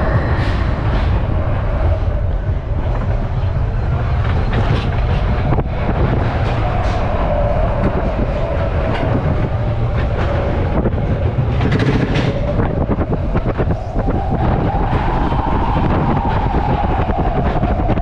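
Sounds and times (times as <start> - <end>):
coaster wheels rumbling: 0.0 - 18.0
rapid clicks over rail joints: 2.5 - 15.4.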